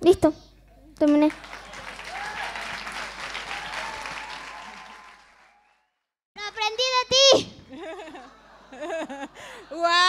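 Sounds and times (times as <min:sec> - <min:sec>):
audience applauding: 0:01.3 - 0:06.0.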